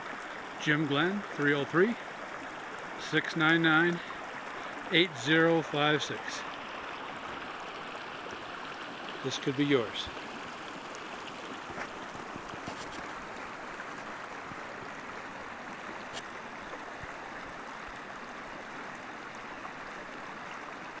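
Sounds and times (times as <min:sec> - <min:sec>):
stream rushing over rocks: 0:00.0 - 0:21.0.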